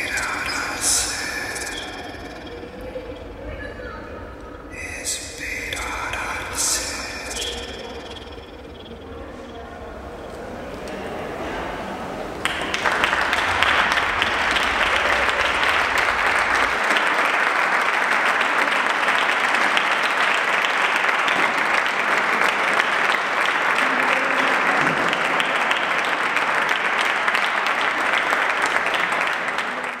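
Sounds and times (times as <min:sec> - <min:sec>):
audience applauding: 0:00.0 - 0:03.2, 0:12.0 - 0:30.0.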